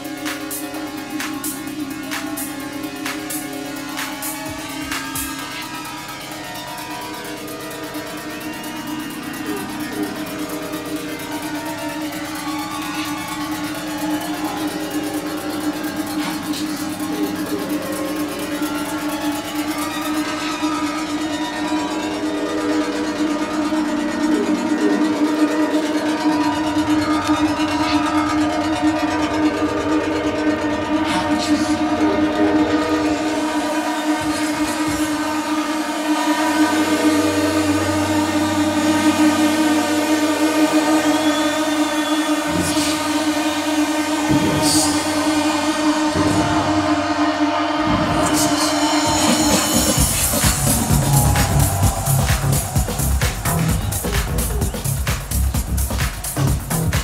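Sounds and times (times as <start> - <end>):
sustained synth chord: 0.0 - 57.0
low bass tone: 43.9 - 57.0.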